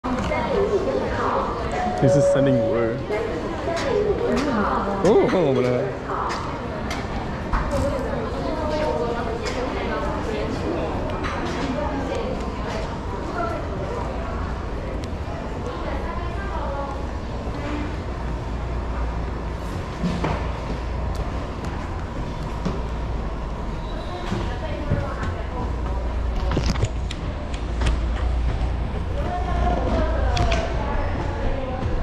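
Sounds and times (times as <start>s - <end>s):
indistinct voices: 0.0s - 19.5s.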